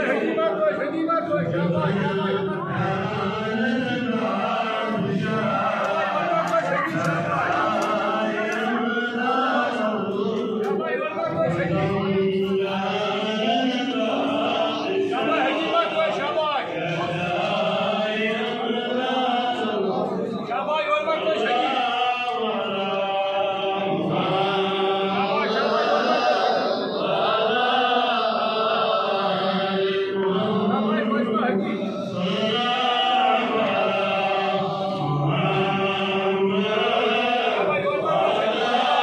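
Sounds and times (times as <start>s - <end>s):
crowd murmur: 0.0s - 39.0s
men chanting: 0.0s - 39.0s.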